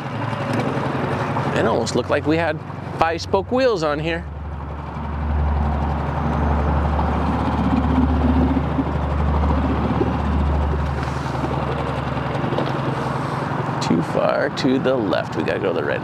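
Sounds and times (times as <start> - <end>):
boat motor running: 0.0 - 16.0.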